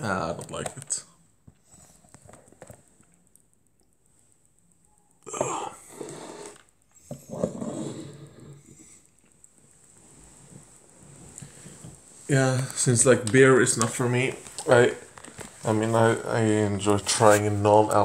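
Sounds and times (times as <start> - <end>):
man's wordless vocal reactions: 5.2 - 5.8
man groaning: 5.3 - 5.8.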